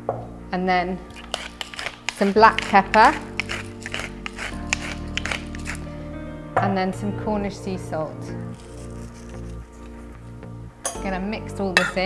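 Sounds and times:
background music with sustained tones: 0.0 - 12.0
pepper mill grinding: 1.1 - 5.9, 8.6 - 10.0.

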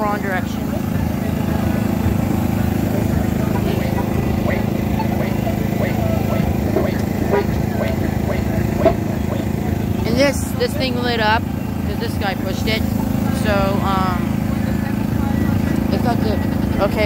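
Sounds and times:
faint background voices: 0.0 - 17.0
street traffic engine drone: 0.0 - 17.0.

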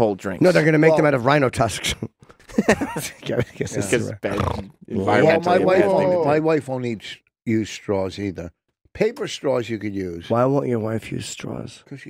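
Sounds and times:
men laughing: 2.4 - 4.5.

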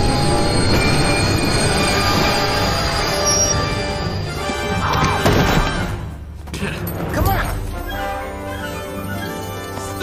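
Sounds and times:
locomotive wheels squealing: 0.0 - 4.2
film soundtrack music: 0.0 - 10.0.

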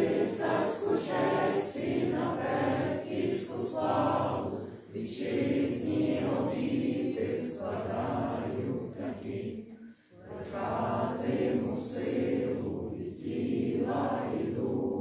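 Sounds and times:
group of people singing: 0.0 - 15.0.

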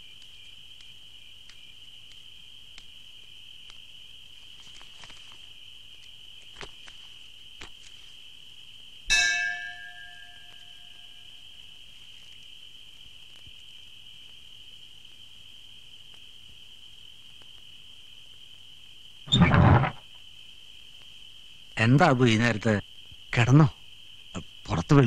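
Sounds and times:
crickets chirring: 0.0 - 25.0.

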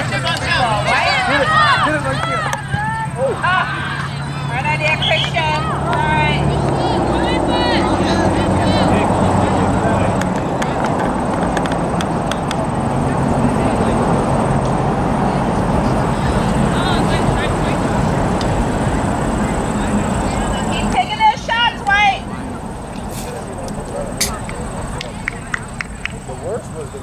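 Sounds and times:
people shouting: 0.0 - 9.7
passing vehicle rumble: 0.0 - 27.0.

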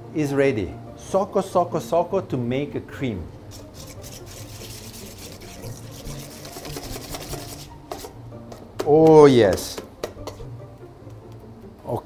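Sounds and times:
whisk beating in metal bowl: 3.5 - 8.1.

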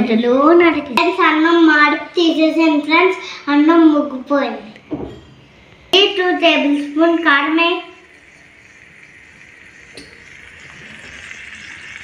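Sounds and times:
food sizzling in hot oil: 6.2 - 12.0.

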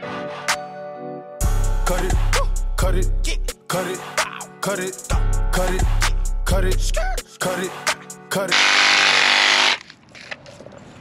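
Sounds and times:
reciprocating saw cutting branch: 8.6 - 9.9.

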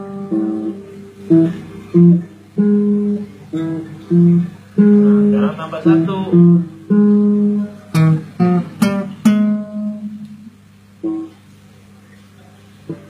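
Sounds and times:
acoustic guitar music: 0.0 - 13.0.

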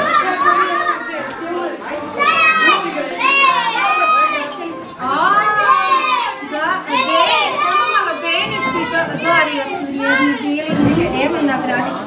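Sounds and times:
young children chattering: 0.0 - 12.0.

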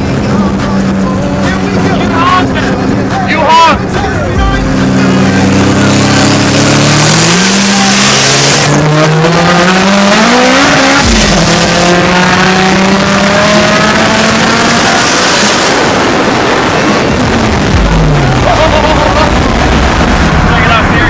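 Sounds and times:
car engine accelerating hard: 0.0 - 21.0.

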